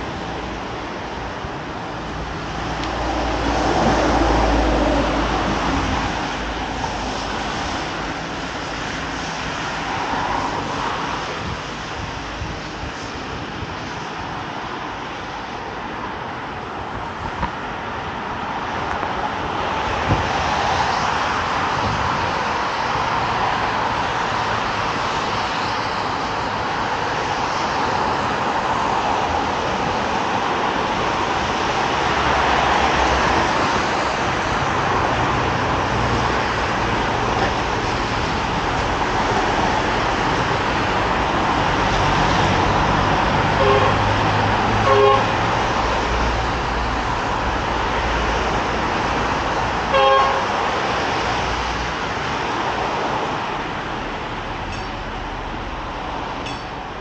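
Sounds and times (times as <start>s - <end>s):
road traffic: 0.0s - 57.0s
car horn toots: 43.6s - 44.2s, 44.8s - 45.4s, 49.9s - 50.5s.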